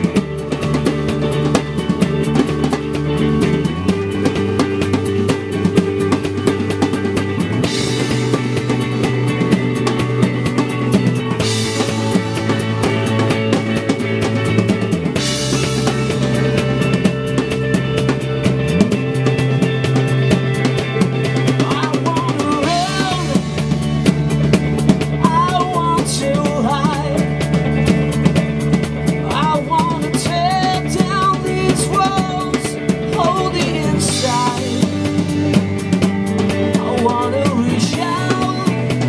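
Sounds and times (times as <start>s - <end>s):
bass guitar: 0.0s - 39.0s
drum kit beat: 0.0s - 39.0s
electric guitar: 0.0s - 39.0s.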